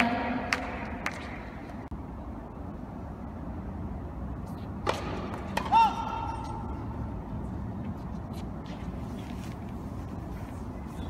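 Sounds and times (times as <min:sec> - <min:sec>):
indoor arena hum: 0:00.0 - 0:11.0
racket striking tennis ball: 0:04.8 - 0:06.7.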